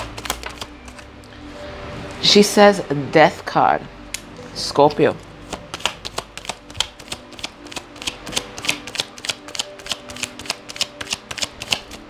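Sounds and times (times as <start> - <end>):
cards being shuffled: 0.0 - 1.1, 5.4 - 12.0.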